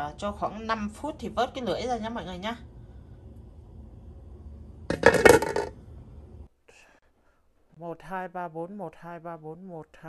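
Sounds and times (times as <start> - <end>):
glass pot lid clattering: 4.9 - 5.7.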